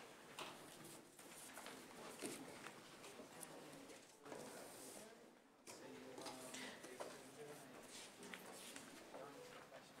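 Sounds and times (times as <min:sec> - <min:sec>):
murmur of people talking: 0:01.8 - 0:10.0.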